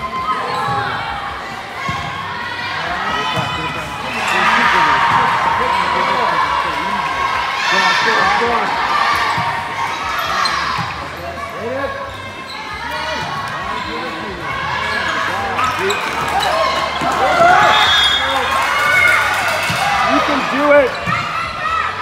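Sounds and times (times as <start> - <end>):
voices calling out: 0.0 - 22.0.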